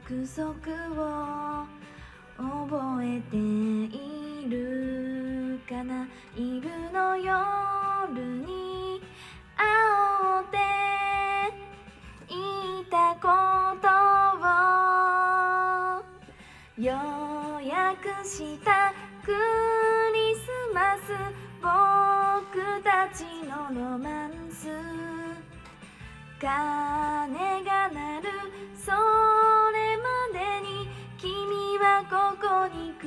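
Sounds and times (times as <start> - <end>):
quiet backing track: 0.0 - 33.0
woman singing pop song: 0.0 - 33.0.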